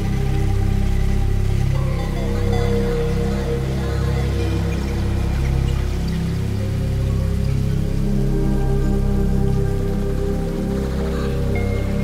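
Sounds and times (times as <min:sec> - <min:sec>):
low bass notes: 0:00.0 - 0:12.0
sustained synth pad: 0:00.0 - 0:12.0.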